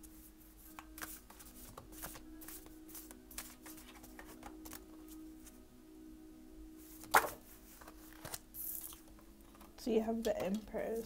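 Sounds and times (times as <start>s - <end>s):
cards being shuffled: 0.7s - 5.6s, 7.0s - 9.7s.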